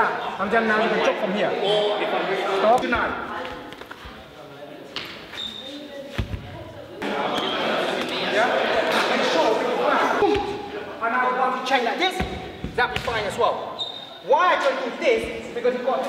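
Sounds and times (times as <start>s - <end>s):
people talking in echoing hall: 0.0s - 16.0s.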